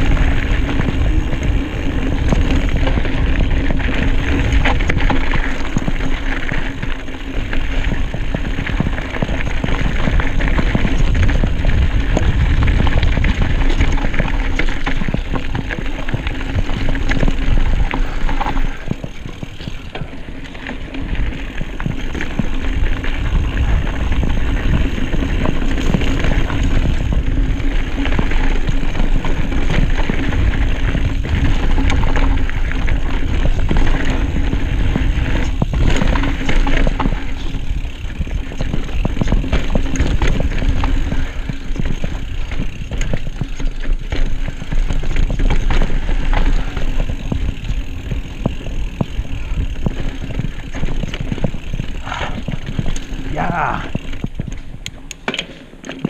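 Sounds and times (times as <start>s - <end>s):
wind rumble on microphone: 0.0s - 55.1s
bike clicks and rattles: 0.0s - 56.0s
tyres rolling over dirt: 0.0s - 56.0s.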